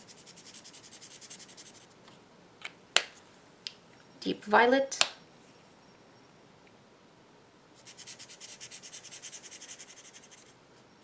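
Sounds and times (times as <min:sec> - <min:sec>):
marker scribbling on paper: 0:00.0 - 0:01.9, 0:07.8 - 0:10.6.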